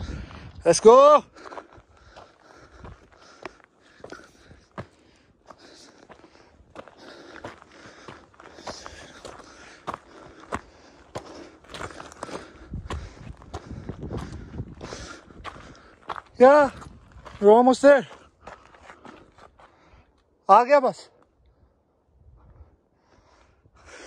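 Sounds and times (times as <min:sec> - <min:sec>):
footsteps on gravel: 0:00.0 - 0:19.8.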